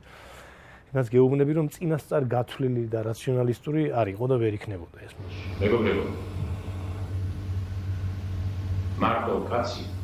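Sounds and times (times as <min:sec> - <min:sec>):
low electrical hum: 0:04.4 - 0:10.0
faint hiss: 0:05.0 - 0:10.0.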